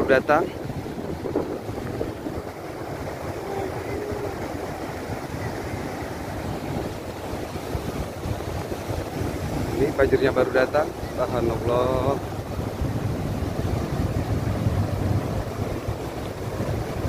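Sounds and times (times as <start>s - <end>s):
rushing mudflow rumble: 0.0s - 17.0s
wind buffeting microphone: 0.0s - 17.0s.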